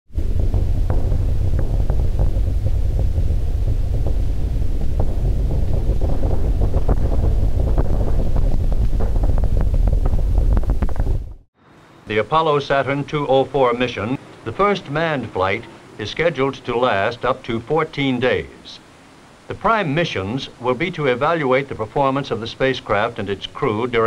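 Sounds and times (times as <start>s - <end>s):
rocket engines roaring: 0.1s - 11.4s, 12.0s - 24.0s.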